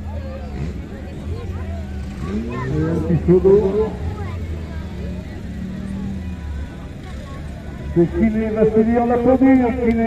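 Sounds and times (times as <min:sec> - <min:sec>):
car engines running at low revs: 0:00.0 - 0:10.0
faint voices: 0:00.0 - 0:10.0.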